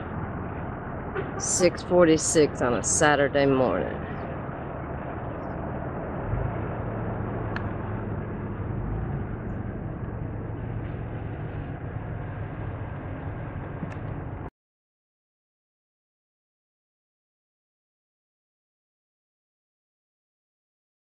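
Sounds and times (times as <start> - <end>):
car engine and road rumble: 0.0 - 14.5
low hum: 0.0 - 14.5.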